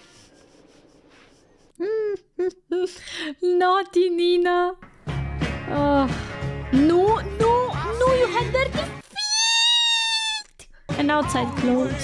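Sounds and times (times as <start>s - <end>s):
woman's high-pitched squeal: 9.0s - 10.6s.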